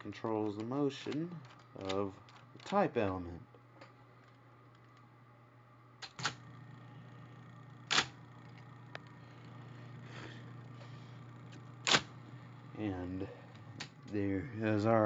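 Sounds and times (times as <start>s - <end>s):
typewriter motor humming: 6.0s - 6.7s, 7.3s - 14.2s
typewriter clicks: 7.9s - 8.1s, 11.8s - 12.1s
typewriter mechanism clacks: 11.8s - 12.1s.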